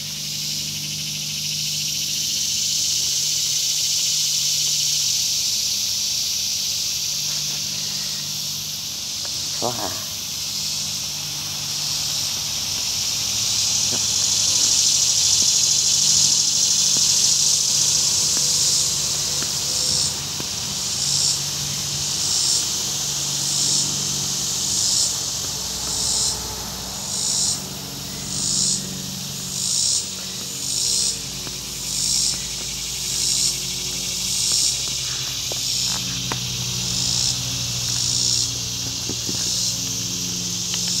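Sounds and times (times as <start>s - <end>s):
cicadas buzzing: 0.0s - 41.0s.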